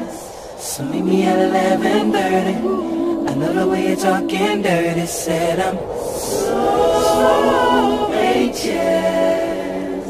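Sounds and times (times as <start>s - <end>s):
voices singing in close harmony: 0.0s - 10.0s.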